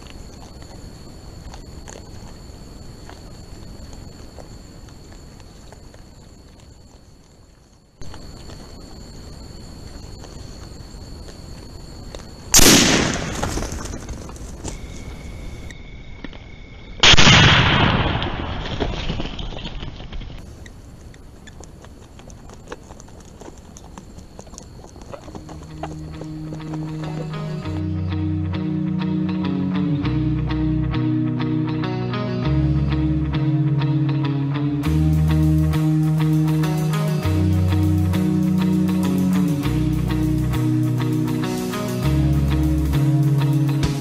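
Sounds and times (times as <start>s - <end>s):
hogs rooting on dry ground: 0.0s - 12.6s, 20.1s - 28.2s
music with low held notes: 25.4s - 44.0s.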